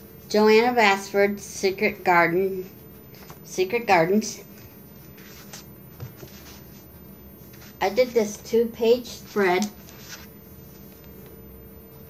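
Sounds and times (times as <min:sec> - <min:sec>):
woman speaking: 0:00.3 - 0:02.8, 0:03.5 - 0:04.6, 0:07.8 - 0:09.8
paper rustling: 0:04.6 - 0:08.4, 0:09.1 - 0:11.4.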